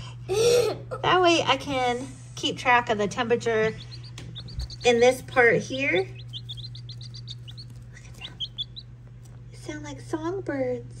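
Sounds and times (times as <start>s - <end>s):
baby chicks peeping: 2.6s - 9.5s.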